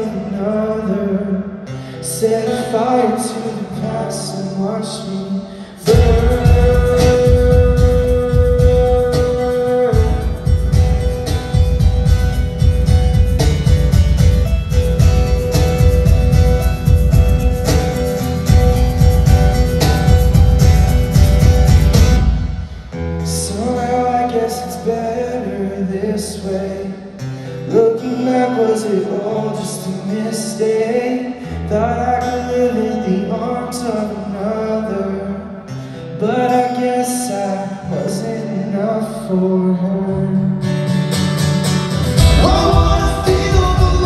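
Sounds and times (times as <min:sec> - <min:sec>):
person singing: 0:00.0 - 0:27.0, 0:27.7 - 0:35.6, 0:42.2 - 0:44.0
acoustic guitars strummed: 0:00.0 - 0:44.0
cajon beat: 0:05.8 - 0:23.1, 0:41.1 - 0:44.0.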